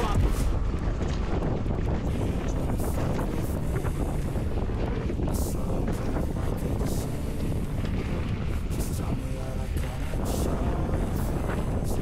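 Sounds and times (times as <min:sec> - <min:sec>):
bike rumbling on dirt trail: 0:00.0 - 0:12.0
wind noise on microphone: 0:00.0 - 0:12.0.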